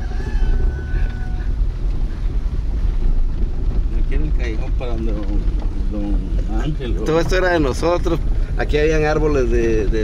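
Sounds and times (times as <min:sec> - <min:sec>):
car rumbling on gravel: 0:00.0 - 0:10.0
wind buffeting microphone: 0:00.0 - 0:10.0.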